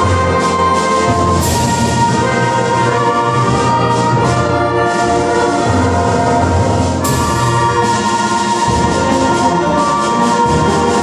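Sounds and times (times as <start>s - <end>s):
concert band holding a chord: 0.0s - 11.0s.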